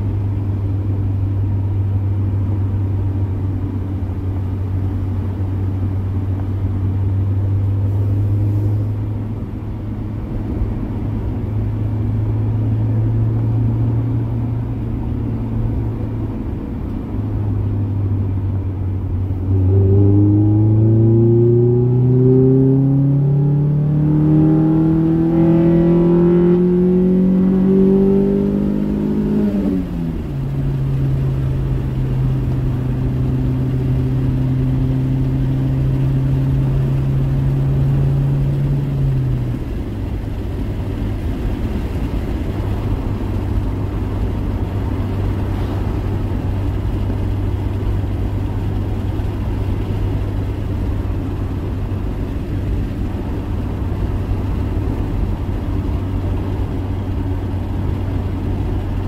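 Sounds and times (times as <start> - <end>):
road noise: 0.0 - 59.0
car engine revving: 3.5 - 59.0.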